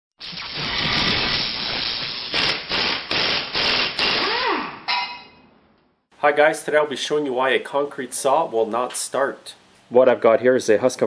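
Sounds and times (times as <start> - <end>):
sharp hits: 0.3 - 5.4
tone sliding up and down: 4.2 - 5.4
ringing hit: 4.8 - 5.5.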